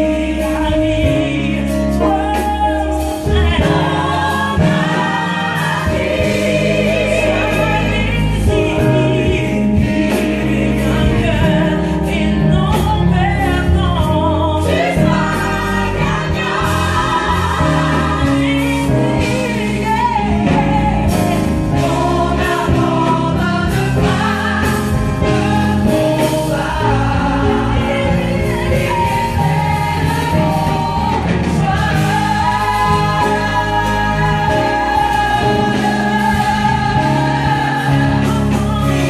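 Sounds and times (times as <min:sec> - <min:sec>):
amplified instrumental accompaniment: 0:00.0 - 0:39.0
gospel choir singing: 0:00.0 - 0:39.0.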